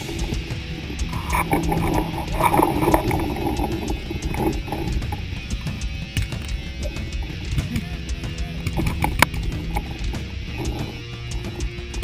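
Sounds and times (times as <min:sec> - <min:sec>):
rock music with guitar: 0:00.0 - 0:12.0
short sharp clicks and cracks: 0:00.1 - 0:07.9.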